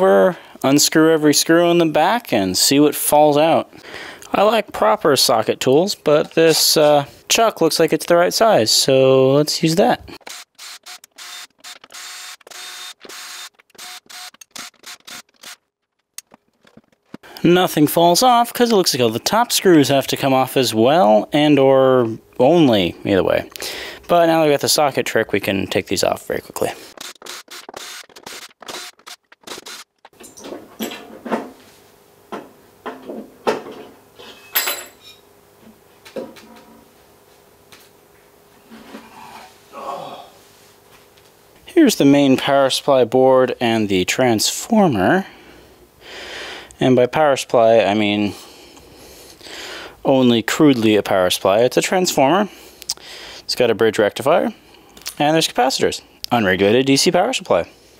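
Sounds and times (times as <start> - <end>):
cordless drill whining: 10.2 - 15.6, 27.0 - 29.8.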